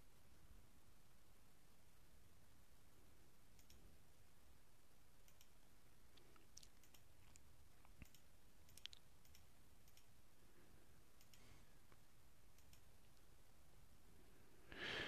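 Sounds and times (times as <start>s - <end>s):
faint background hiss: 0.0s - 15.0s
small sharp clicks: 3.5s - 3.9s, 5.2s - 10.2s, 11.2s - 13.3s.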